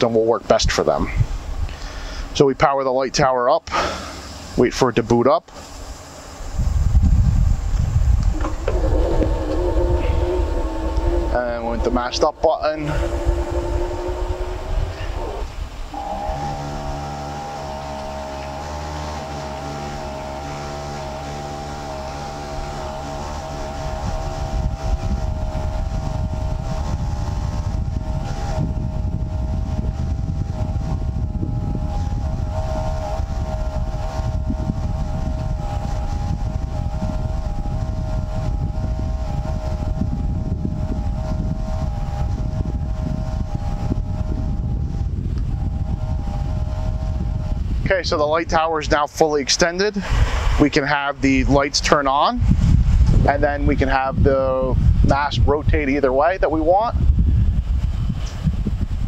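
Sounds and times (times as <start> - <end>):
air compressor whining: 0.0 - 59.0
even rumble: 0.0 - 59.0.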